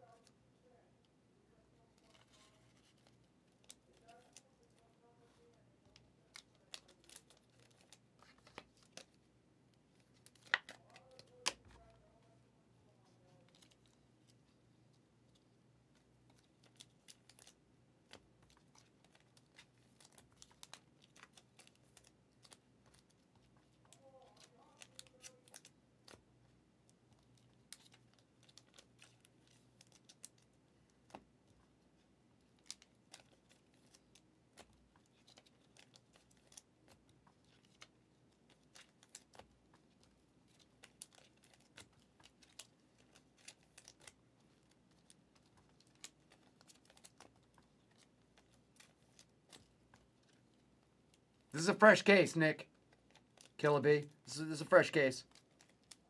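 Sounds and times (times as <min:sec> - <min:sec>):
trading cards handled on table: 0:01.8 - 0:12.0, 0:27.1 - 0:56.0.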